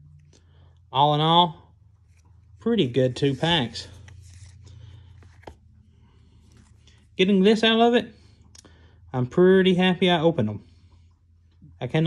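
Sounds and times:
cards rubbing and sliding: 0:02.0 - 0:05.8
card tap: 0:05.2 - 0:05.6.

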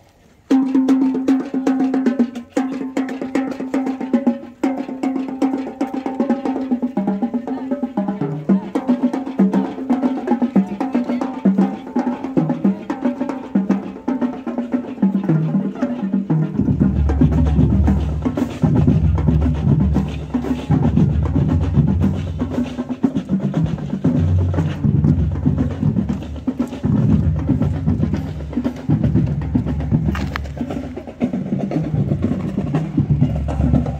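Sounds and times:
snare drums: 0:00.5 - 0:33.9
bass drums: 0:16.3 - 0:33.9.

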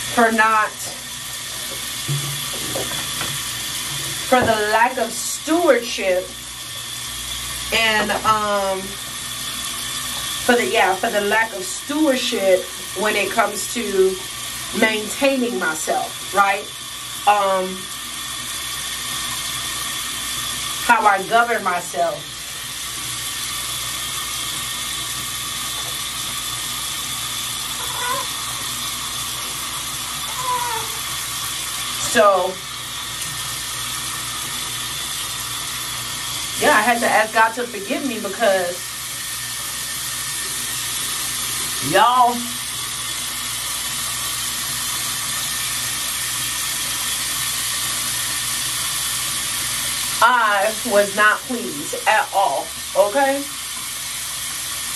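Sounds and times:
tap water running into sink: 0:00.0 - 0:54.9.

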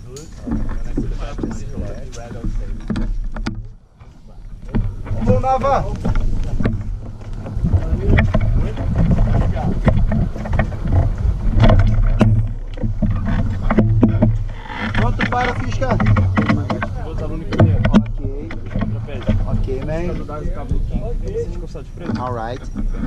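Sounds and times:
muffled voices: 0:00.0 - 0:03.1, 0:04.0 - 0:23.0
wind buffeting microphone: 0:00.0 - 0:23.0
knocks and clatter from frame: 0:00.1 - 0:03.8, 0:04.6 - 0:23.0.

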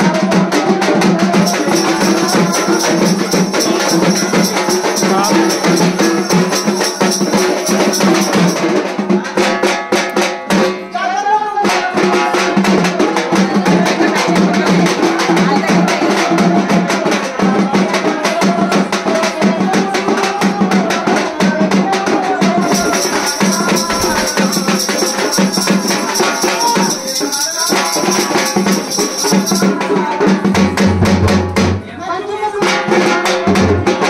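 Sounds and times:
large drum beaten quickly: 0:00.0 - 0:10.8, 0:11.6 - 0:31.9, 0:32.6 - 0:34.0
music and singing: 0:00.0 - 0:34.0.

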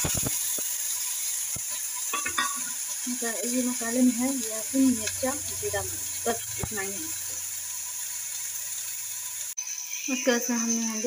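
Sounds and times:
food sizzling in oil: 0:00.0 - 0:11.0.

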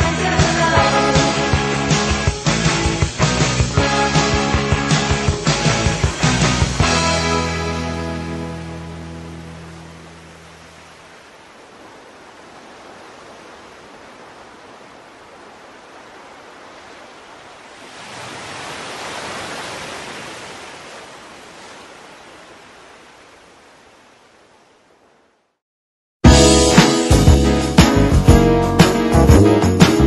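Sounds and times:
sea waves: 0:00.0 - 0:25.5.

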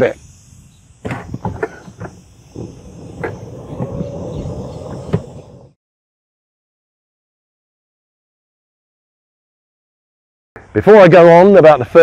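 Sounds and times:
faint steady whine: 0:00.0 - 0:05.8
golf cart rumble: 0:01.3 - 0:05.8.

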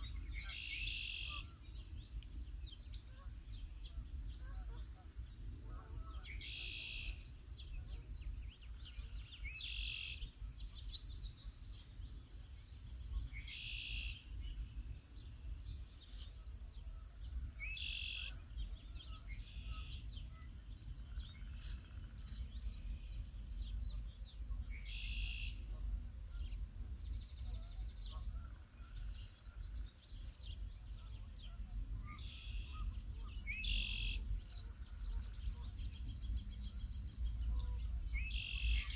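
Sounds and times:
buzzy high bird call: 0:00.0 - 0:01.6, 0:06.1 - 0:07.2.

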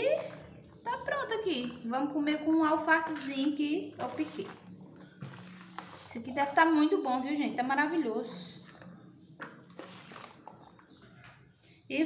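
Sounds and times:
woman's voice: 0:00.0 - 0:04.6, 0:06.1 - 0:08.7
metal spoon stirring rice in bowl: 0:02.8 - 0:06.4, 0:08.6 - 0:11.0.

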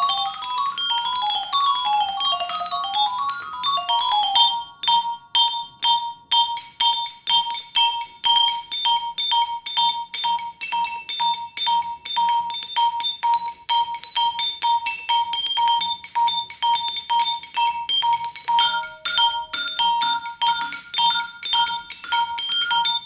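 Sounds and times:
mallet percussion playing: 0:00.0 - 0:23.0.

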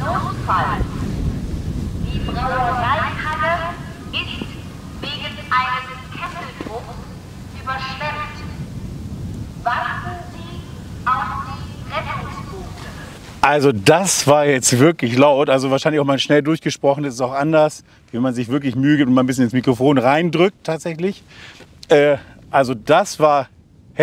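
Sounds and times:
wind rumble on microphone: 0:00.0 - 0:24.0.

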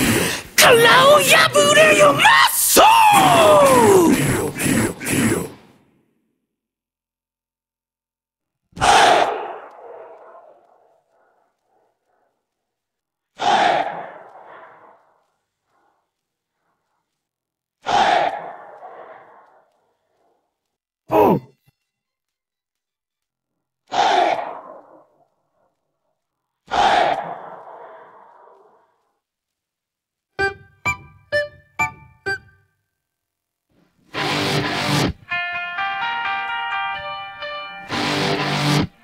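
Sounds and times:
shouted vocal calls with reverb: 0:00.6 - 0:05.2.

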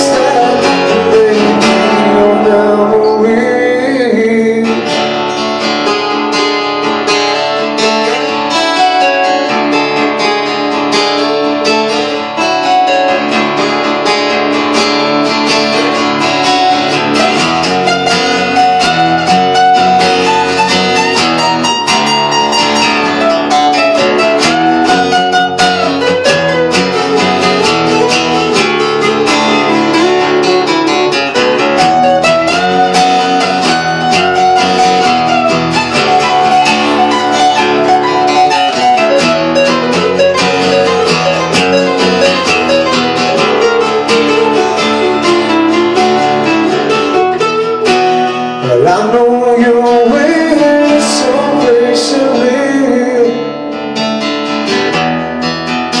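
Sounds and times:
acoustic guitars strumming chords: 0:00.0 - 0:56.0.

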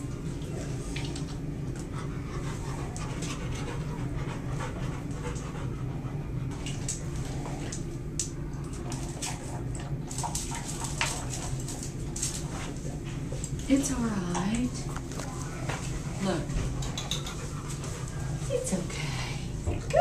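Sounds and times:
steady low hum: 0:00.0 - 0:20.0
dog panting: 0:01.7 - 0:06.7, 0:15.7 - 0:18.9
dog eating dry kibble: 0:08.6 - 0:18.4
kibble clicks against metal bowl: 0:16.8 - 0:17.4.

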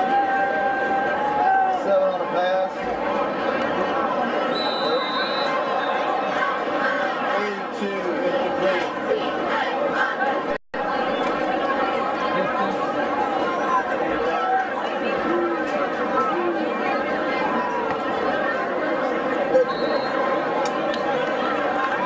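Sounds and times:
crowd chattering: 0:00.0 - 0:22.0.

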